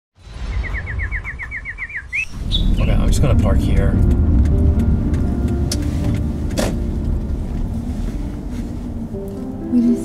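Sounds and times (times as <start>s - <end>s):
steady low rumble: 0.2s - 10.0s
high bird-like chirps: 0.3s - 3.1s.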